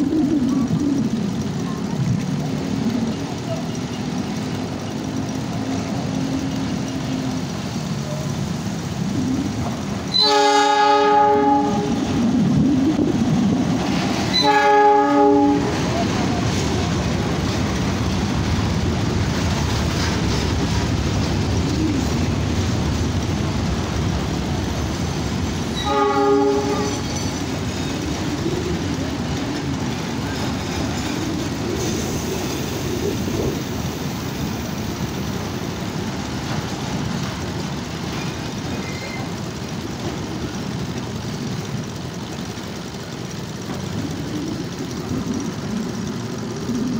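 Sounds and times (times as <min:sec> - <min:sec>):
freight train rumbling and clattering: 0:00.0 - 0:46.9
locomotive horn blasts: 0:10.1 - 0:12.0, 0:14.3 - 0:15.8, 0:25.8 - 0:27.0.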